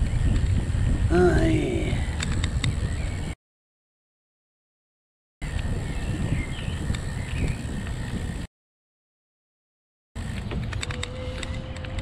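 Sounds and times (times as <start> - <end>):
bicycle clicks: 0.0 - 1.1, 1.7 - 3.4, 5.4 - 8.5, 10.2 - 12.0
bicycle tyre and wind rumble: 0.0 - 3.4, 5.4 - 8.5, 10.2 - 12.0.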